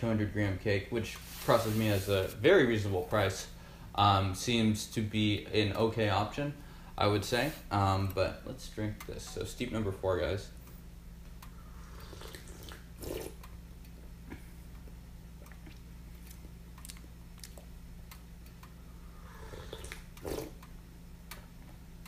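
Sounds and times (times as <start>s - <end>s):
low steady hum: 0.0s - 22.0s
person slurping tea: 11.9s - 13.4s, 19.2s - 20.6s.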